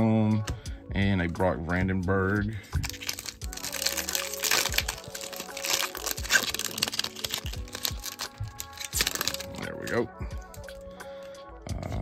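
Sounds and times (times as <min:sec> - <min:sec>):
foil wrapper tearing and crinkling: 0:02.8 - 0:10.9.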